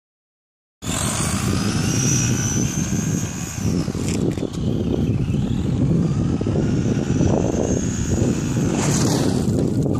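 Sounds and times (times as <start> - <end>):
rc truck motor whining: 0.8 - 9.9.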